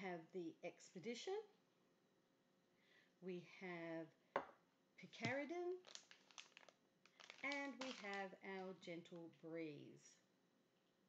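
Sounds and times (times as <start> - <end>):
woman talking: 0.0 - 1.5, 3.2 - 4.1, 5.0 - 5.9, 7.3 - 10.2
packaging clicks and crinkles: 5.2 - 8.7.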